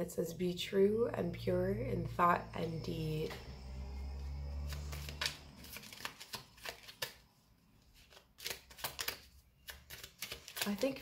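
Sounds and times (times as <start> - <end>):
cards being shuffled: 4.6 - 7.2, 7.9 - 11.0.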